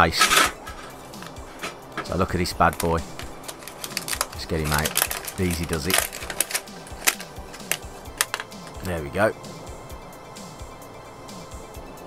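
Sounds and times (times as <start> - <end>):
faint background music: 0.0 - 12.0
plastic bag crinkling: 0.6 - 8.8.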